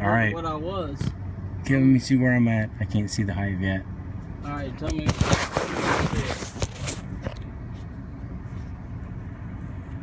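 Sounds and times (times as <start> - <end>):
vehicle engine humming: 0.0 - 10.0
phone handling rubbing and rustling: 5.0 - 7.5.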